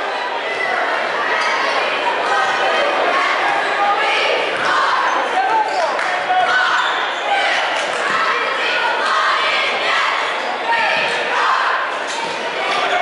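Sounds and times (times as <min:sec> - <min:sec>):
echoing crowd hubbub: 0:00.0 - 0:13.0.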